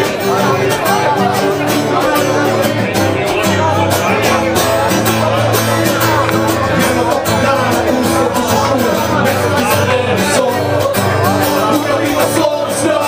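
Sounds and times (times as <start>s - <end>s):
live band instrumental music: 0.0s - 13.0s.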